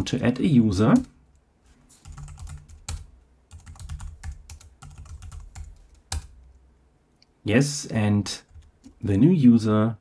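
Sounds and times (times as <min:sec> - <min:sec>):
computer keyboard typing: 0:00.9 - 0:01.2, 0:02.0 - 0:06.5, 0:08.4 - 0:09.0.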